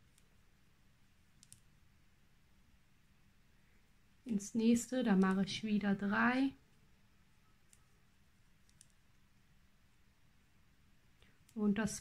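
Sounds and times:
crochet hook clicks: 1.4s - 1.6s, 5.1s - 5.5s.

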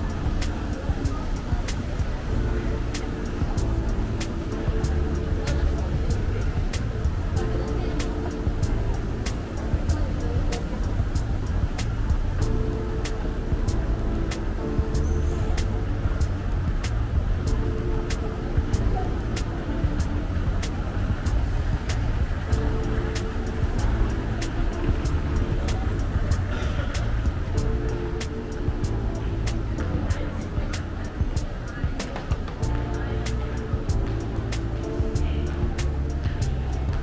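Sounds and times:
continuous low rumble: 0.0s - 37.0s
mall background music: 0.0s - 37.0s.

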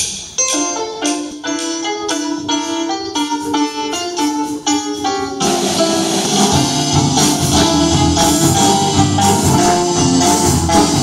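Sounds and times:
bass: 0.0s - 11.0s
drums and cymbals: 0.0s - 11.0s
pitched melody notes: 0.3s - 11.0s.

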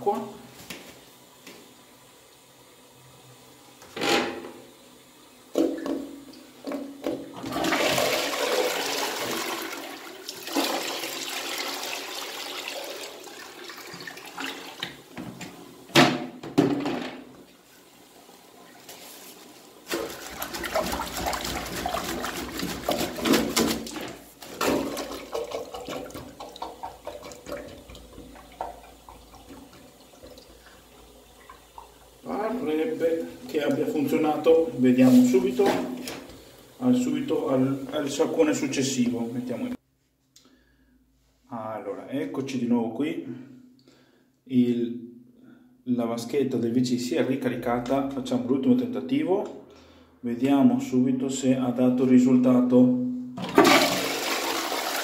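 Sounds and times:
toilet flushing water rushing: 1.1s - 15.9s, 19.5s - 39.8s, 53.4s - 55.0s.

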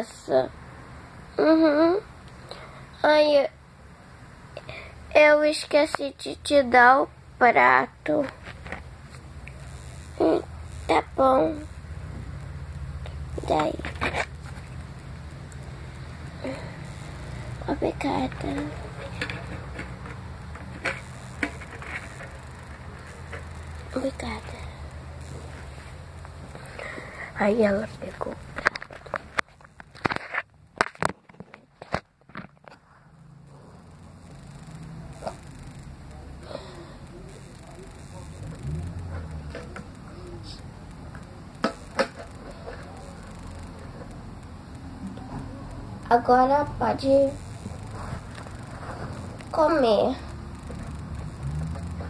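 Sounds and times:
phone handling noise: 18.3s - 23.8s.

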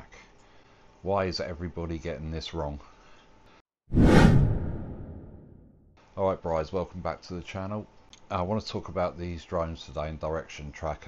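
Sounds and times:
whoosh sound effect: 3.9s - 5.7s.

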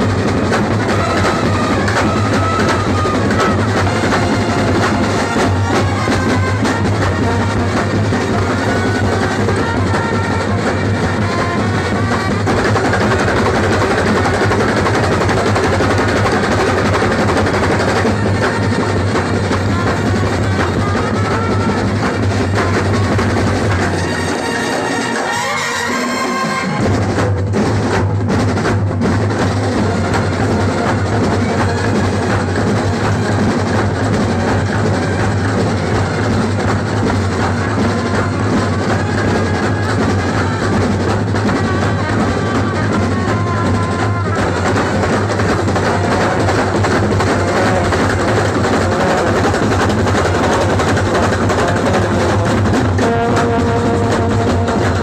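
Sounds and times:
horn melody: 0.0s - 27.2s, 29.2s - 55.0s
brass band playing: 0.0s - 55.0s
drum roll: 0.0s - 55.0s.

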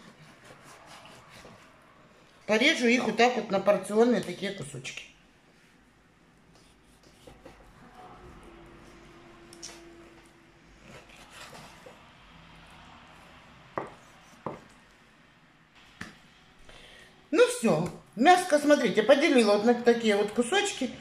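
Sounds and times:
knife slicing meat on wooden board: 0.0s - 1.7s, 10.8s - 12.0s.

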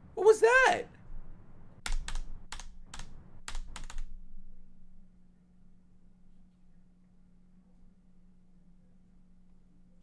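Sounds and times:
sharp clicks: 1.8s - 4.1s.

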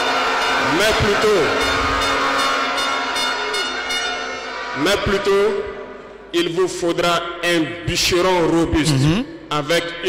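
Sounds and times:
man speaking: 7.5s - 10.0s.

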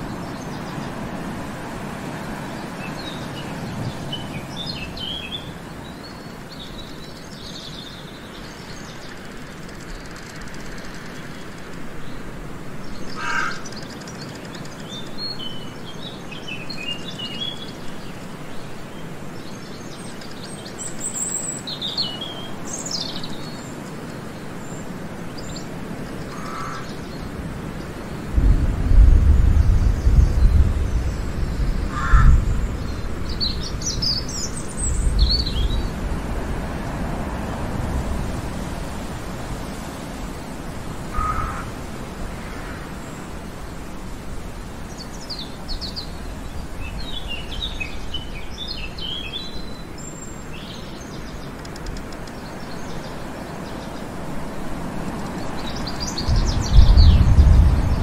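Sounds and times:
small birds chirping and trilling: 0.0s - 28.4s, 29.2s - 58.0s
rustling hiss: 0.0s - 58.0s
loud low rumble: 56.3s - 58.0s.

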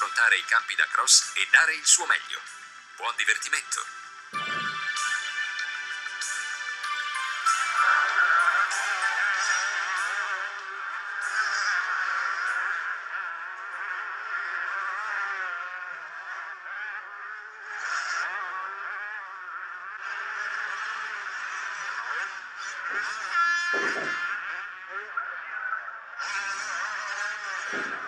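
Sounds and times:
motocross bike engines revving: 6.1s - 28.0s.

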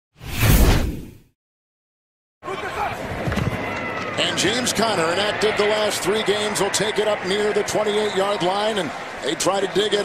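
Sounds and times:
stadium crowd noise: 2.4s - 10.0s.

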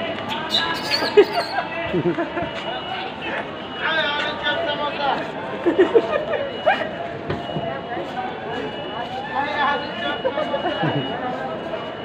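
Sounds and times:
background voices chattering: 0.0s - 12.0s.

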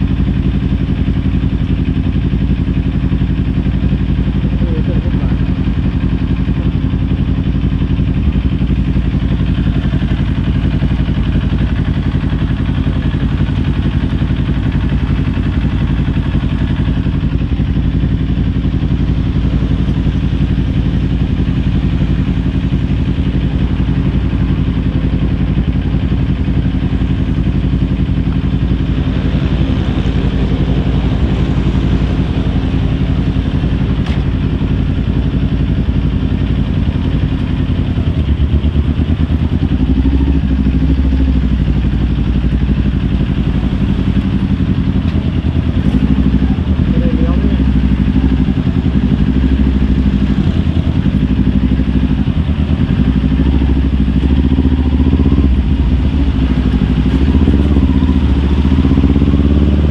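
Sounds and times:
motorcycle engine idling: 0.0s - 59.9s.

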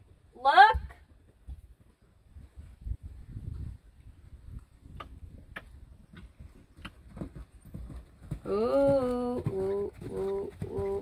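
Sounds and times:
muffled hoofbeats on sand: 1.0s - 11.0s.

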